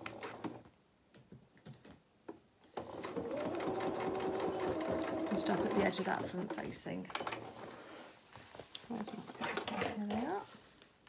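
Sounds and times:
sewing machine stitching: 2.7 - 7.8
sewing machine clicks: 2.8 - 7.6.

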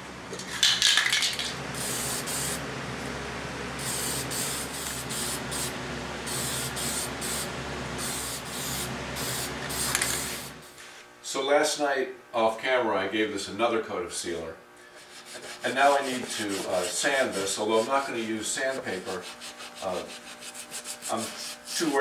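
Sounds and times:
aerosol can spraying: 1.3 - 2.6, 3.8 - 10.7.

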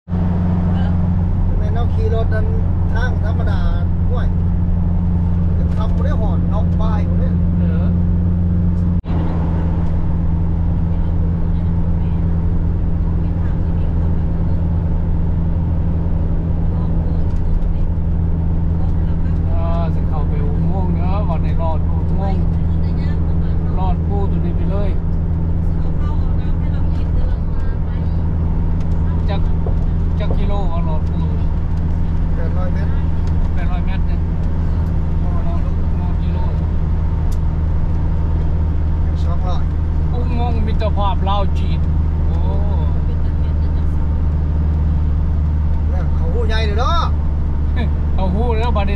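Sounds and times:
car road and engine drone: 0.0 - 48.9
voices talking: 0.2 - 8.1, 8.9 - 48.9.

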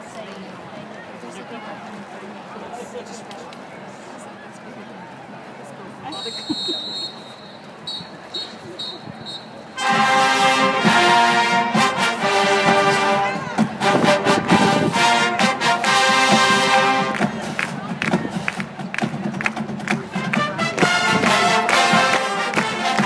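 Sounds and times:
crowd murmur: 0.0 - 23.0
marching band brass and drums: 6.1 - 23.0.

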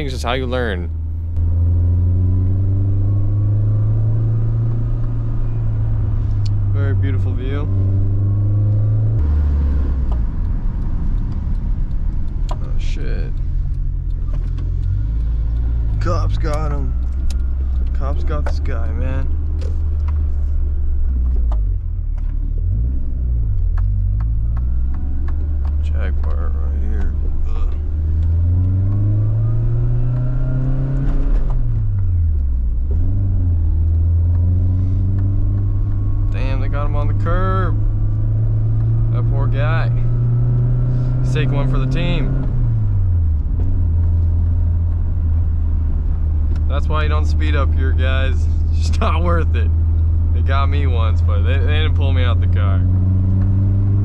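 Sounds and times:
car engine heard from inside: 0.0 - 54.0.

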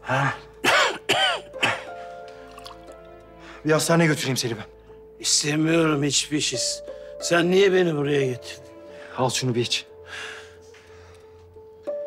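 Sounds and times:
soft background music: 0.0 - 12.0
man coughing and spluttering: 0.6 - 1.9, 2.5 - 2.9.

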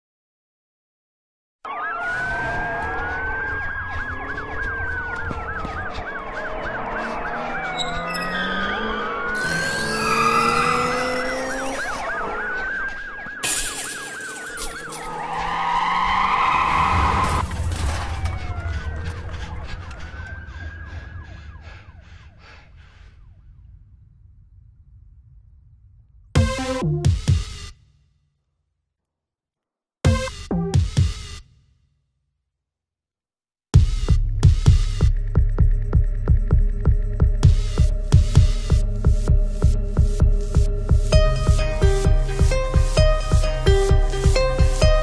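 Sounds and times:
siren fast yelp: 1.7 - 17.4
emergency vehicle sirens wailing: 1.7 - 22.4, 36.9 - 45.0.

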